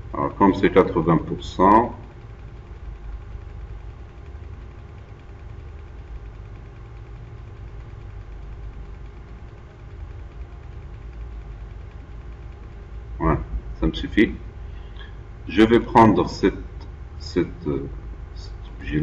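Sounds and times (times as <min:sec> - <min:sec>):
faint steady tones: 0:00.0 - 0:19.0
steady low hum: 0:00.0 - 0:19.0.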